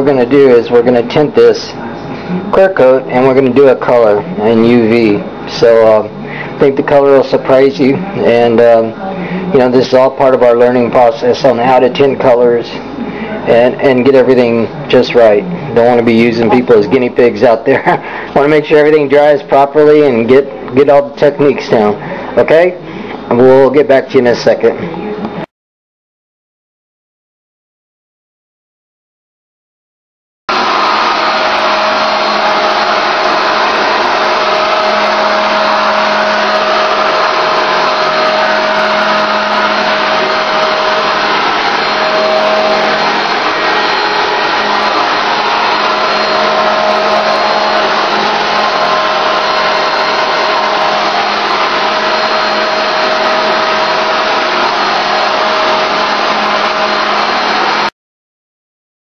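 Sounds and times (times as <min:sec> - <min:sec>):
steady whine: 0:00.0 - 0:25.5, 0:30.5 - 0:57.9
paint spray rig hissing: 0:30.5 - 0:57.9.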